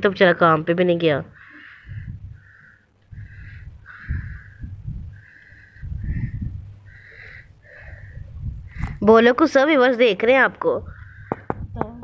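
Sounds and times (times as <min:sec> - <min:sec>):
harsh bird calls: 0:00.5 - 0:11.8
low rumble: 0:01.9 - 0:07.0.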